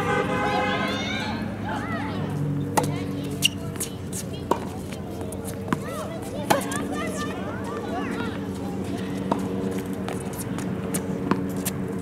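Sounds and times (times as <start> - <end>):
tennis balls bouncing on court: 2.1 - 12.0
tennis balls struck by rackets: 2.4 - 12.0.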